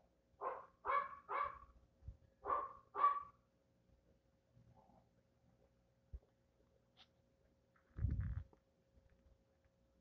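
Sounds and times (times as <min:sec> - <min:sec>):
dog barking: 0:00.4 - 0:01.7, 0:02.4 - 0:03.4.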